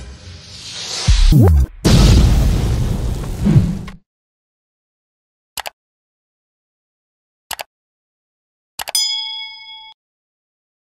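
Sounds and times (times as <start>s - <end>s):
notification bell ding: 8.9s - 10.0s.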